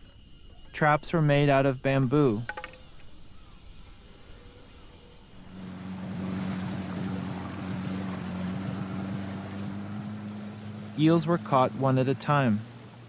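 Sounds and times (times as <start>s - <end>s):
wind: 0.0s - 13.0s
outboard motor running: 5.4s - 13.0s
water rushing past hull: 5.4s - 13.0s.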